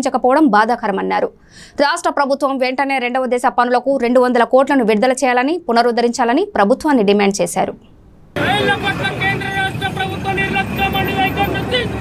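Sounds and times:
road traffic noise: 8.3 - 12.0.

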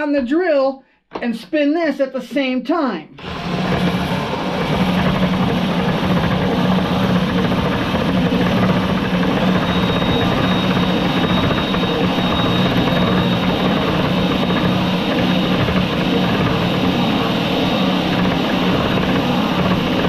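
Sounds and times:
cordless drill motor hum: 3.2 - 20.0
thin high whine: 4.6 - 20.0.

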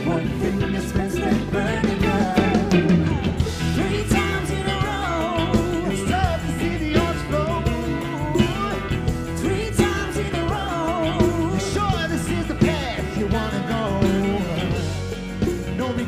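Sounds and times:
woman singing: 0.0 - 14.9
live band playing: 0.0 - 16.0
man singing: 0.0 - 16.0.

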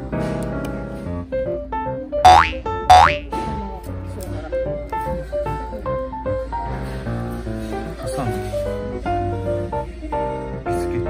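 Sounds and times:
light piano background music: 0.0 - 11.0
cartoon upward sweep effect: 2.3 - 3.2.

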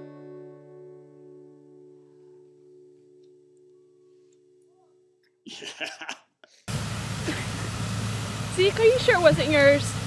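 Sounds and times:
acoustic guitar chord ringing: 0.0 - 5.2.

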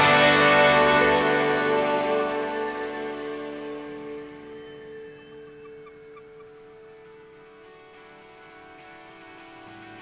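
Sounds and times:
soft high notes: 0.0 - 10.0
sustained music chord: 0.0 - 10.0.

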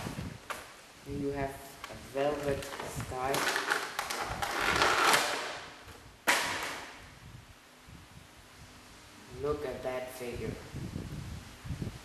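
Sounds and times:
plastic package crinkling: 1.8 - 5.7
sharp plastic crackle: 1.8 - 7.0.

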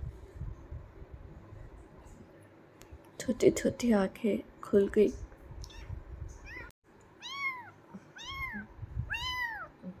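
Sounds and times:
kitten mewing: 5.7 - 10.0.

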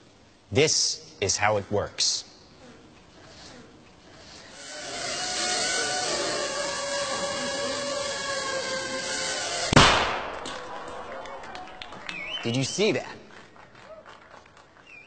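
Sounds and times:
drone buzzing whine: 2.7 - 12.4
sharp explosive bang: 9.7 - 10.6.

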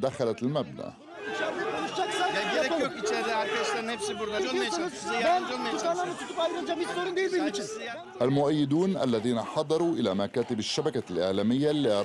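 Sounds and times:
crowd voices talking: 0.0 - 12.0.

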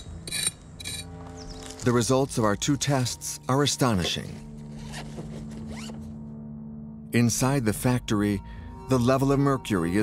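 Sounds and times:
low steady musical drone: 0.0 - 10.0
zipper being pulled shut: 4.7 - 6.0.

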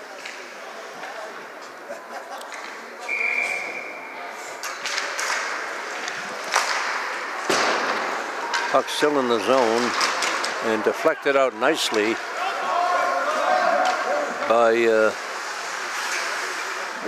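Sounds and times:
spectators chattering: 0.0 - 17.0
referee whistle: 3.0 - 4.1
skates scraping ice: 4.4 - 17.0
hockey sticks clacking: 4.6 - 12.4, 13.2 - 17.0
puck banging against boards: 9.5 - 10.7.

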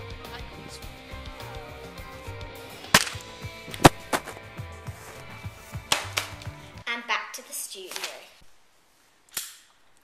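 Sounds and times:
background music with steady beat: 0.0 - 6.8
sharp cracks: 2.9 - 4.4, 5.9 - 6.5.

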